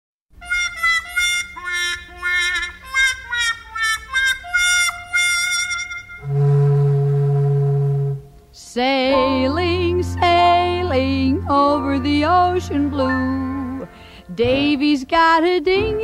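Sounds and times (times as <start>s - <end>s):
wind instrument melody: 0.4s - 8.5s, 9.1s - 15.0s.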